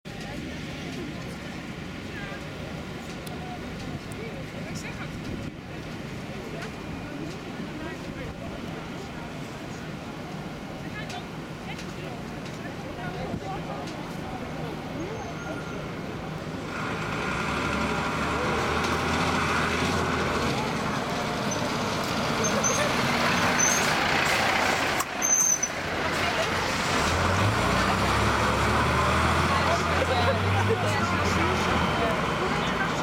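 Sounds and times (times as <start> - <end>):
street traffic noise: 0.0 - 33.0
fire truck diesel engine passing: 12.2 - 33.0.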